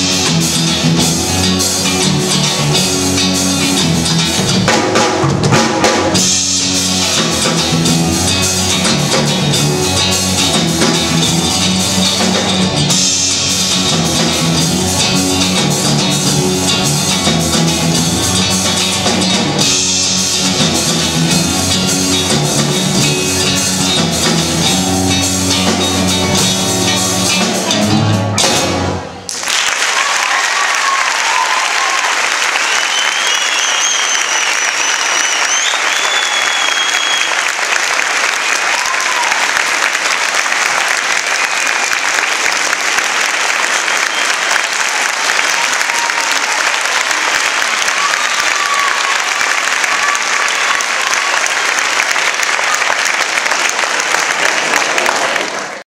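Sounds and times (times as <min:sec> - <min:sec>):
band playing rumba: 0:00.0 - 0:29.3
audience applauding: 0:29.2 - 0:55.9
high wavering whistle: 0:32.7 - 0:37.4.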